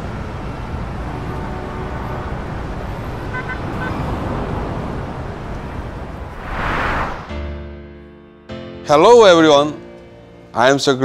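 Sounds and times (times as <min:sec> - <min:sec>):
road traffic rumble: 0:00.0 - 0:07.3
car horn toot: 0:03.3 - 0:04.0.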